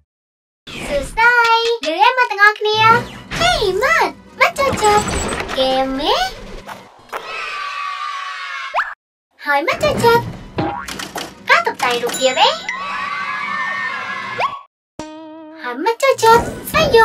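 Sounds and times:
children's music: 11.4s - 14.4s.

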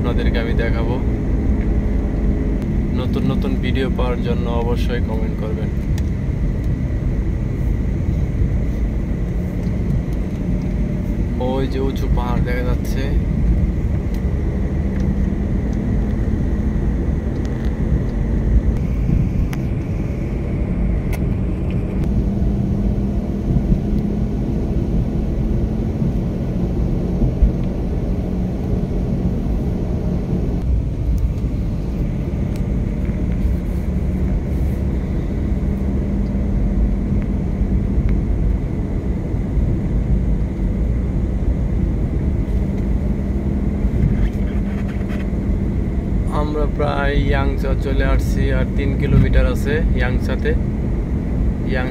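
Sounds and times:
car road and engine rumble: 0.0s - 51.9s
faint hum: 0.0s - 51.9s.

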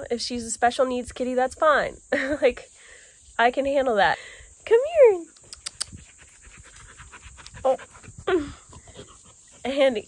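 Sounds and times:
dog panting: 5.2s - 10.0s
sharp clicks: 5.3s - 6.0s.

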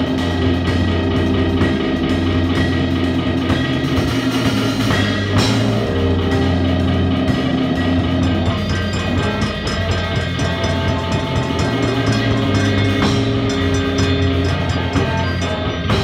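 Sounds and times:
cymbals ticking: 0.0s - 16.0s
deep bass held notes: 0.0s - 16.0s.

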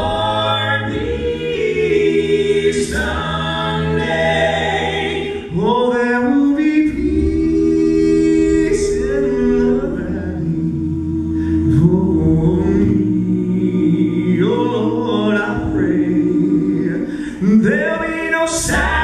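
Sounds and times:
male quartet singing a cappella: 0.0s - 19.0s.

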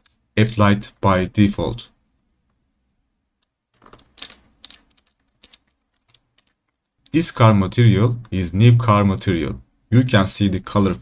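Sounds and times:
keyboard and mouse clicks: 3.4s - 7.2s.

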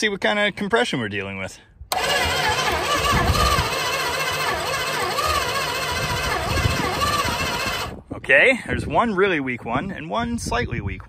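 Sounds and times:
starter motor cranking engine: 1.9s - 8.0s.

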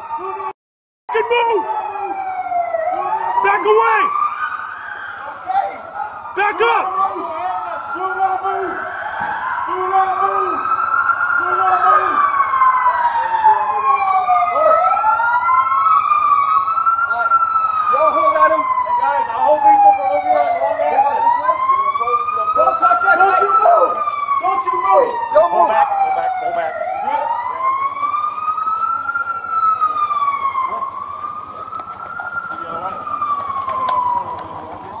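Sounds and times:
police sirens wailing: 0.0s - 35.0s.

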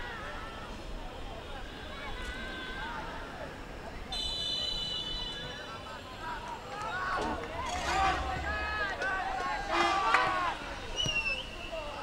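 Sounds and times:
referee's whistle blast: 4.2s - 5.4s.

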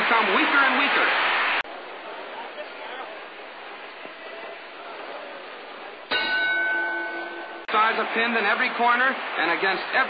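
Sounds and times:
boxing ring bell ringing: 6.1s - 7.7s.

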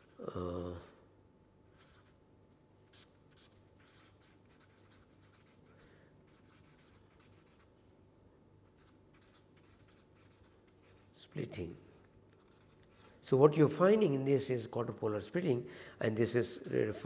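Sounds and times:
marker scratching on paper: 1.6s - 2.2s, 2.9s - 7.7s, 8.6s - 13.3s.

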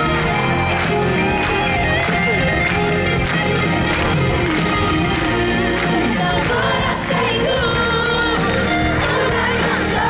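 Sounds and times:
crowd noise: 0.0s - 10.0s
live pop ballad over loudspeakers: 0.0s - 10.0s
woman singing: 5.3s - 10.0s.

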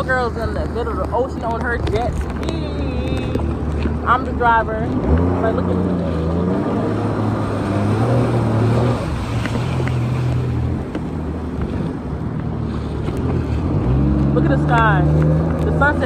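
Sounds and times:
jet ski engine humming: 0.0s - 16.0s
water rushing past: 0.0s - 16.0s
wind buffeting microphone: 0.0s - 16.0s.

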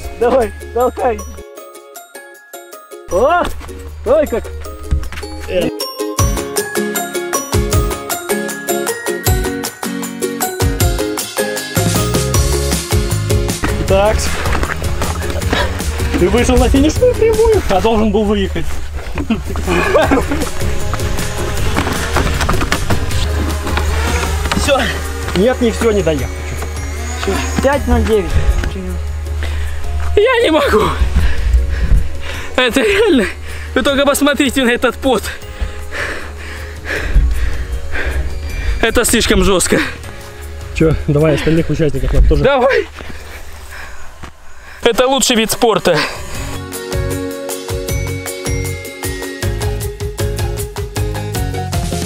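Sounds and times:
background music: 0.0s - 42.8s, 44.8s - 52.0s.

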